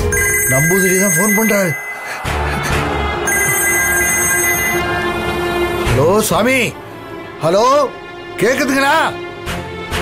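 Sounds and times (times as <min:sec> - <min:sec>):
telephone ringing: 0:00.0 - 0:02.4, 0:03.2 - 0:05.0.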